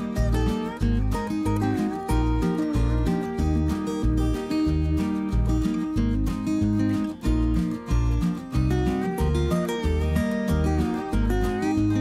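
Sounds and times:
instrumental guitar music: 0.0s - 12.0s.

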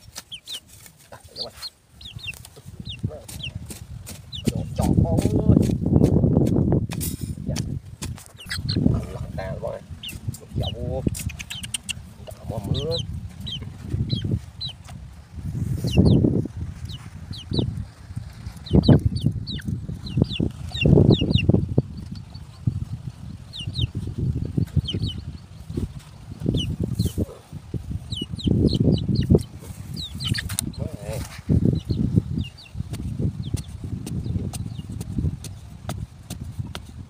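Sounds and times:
birds chirping: 0.0s - 6.2s, 7.5s - 36.8s.

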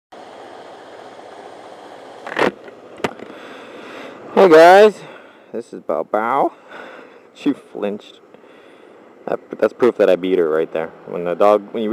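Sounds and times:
city street traffic: 0.1s - 11.9s.

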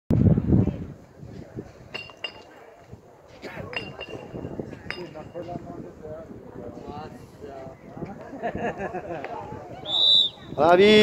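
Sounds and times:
faint distant voices: 0.2s - 11.0s
high ringing clinks: 1.9s - 2.5s, 3.7s - 5.6s.

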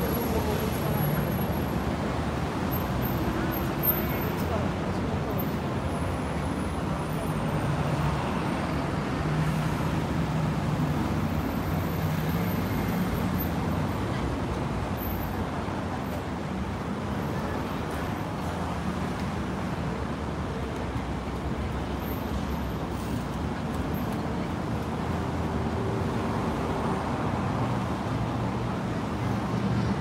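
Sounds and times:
city street traffic rumble: 0.0s - 30.0s.

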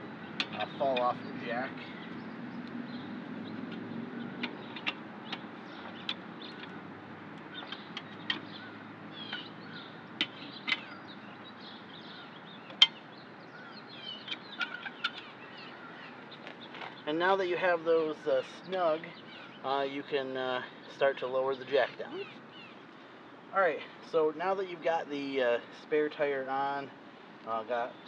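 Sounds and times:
lug wrench clicking on lug nuts: 3.7s - 6.8s.

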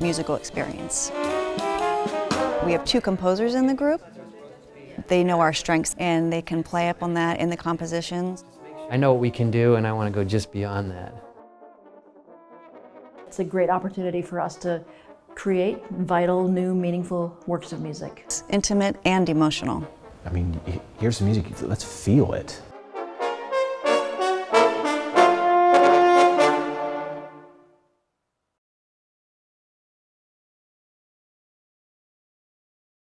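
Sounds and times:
french horns playing chords: 0.0s - 3.1s, 8.4s - 16.5s, 19.2s - 27.8s
french horns playing softly: 19.7s - 27.6s.

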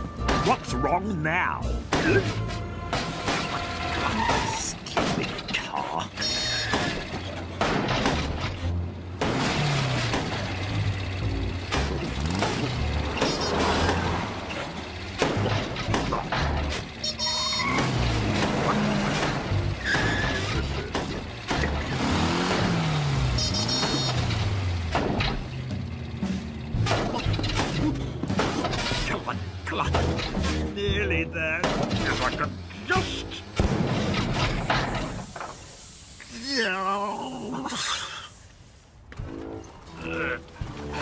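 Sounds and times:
cartoon background music: 0.0s - 4.7s, 26.2s - 33.5s, 39.2s - 41.0s
car engine sound effects: 1.8s - 35.7s.

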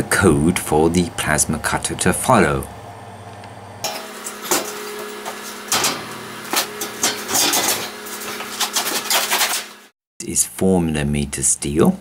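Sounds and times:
steady low hum: 0.0s - 9.8s
metal sheet scraping and clanking: 3.8s - 9.9s.

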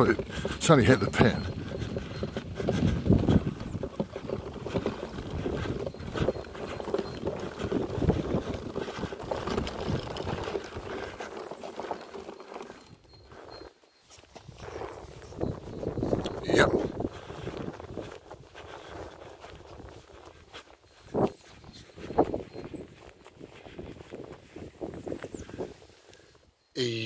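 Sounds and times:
wind rumbling on microphone: 0.0s - 11.4s, 14.4s - 26.1s
footsteps on grass: 0.1s - 26.0s.

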